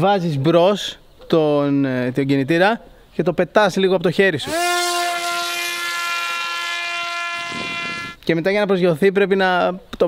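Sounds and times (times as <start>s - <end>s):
drone propeller buzzing whine: 7.3s - 8.2s.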